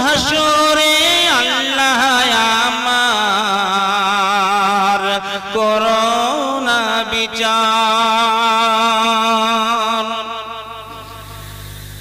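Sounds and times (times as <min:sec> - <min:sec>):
slow melodic chanting: 0:00.0 - 0:12.0
steady low drone: 0:09.7 - 0:12.0.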